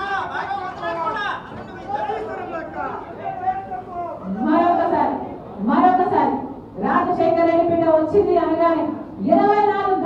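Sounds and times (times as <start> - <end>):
woman speaking into microphone: 4.3 - 10.0.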